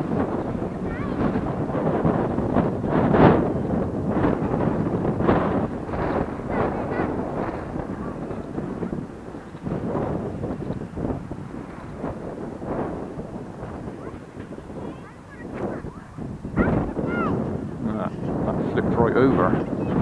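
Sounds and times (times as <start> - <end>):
gusty wind buffeting microphone: 0.0 - 20.0.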